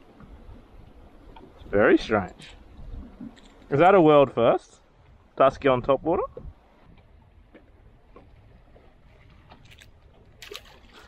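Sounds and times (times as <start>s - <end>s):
faint wind: 0.0s - 11.0s
water noise around boat: 0.0s - 11.0s.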